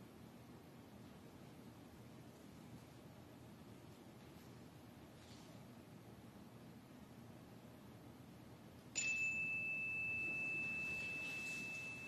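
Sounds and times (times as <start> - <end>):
small bell ringing high tone: 8.9 - 12.0.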